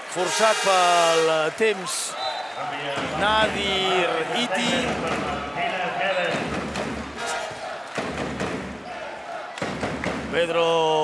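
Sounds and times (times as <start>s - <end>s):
voices of players and crowd: 0.0s - 11.0s.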